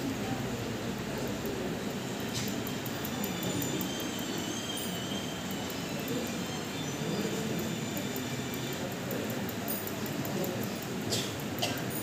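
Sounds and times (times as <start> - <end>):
low chatter in a large hall: 0.0 - 12.0.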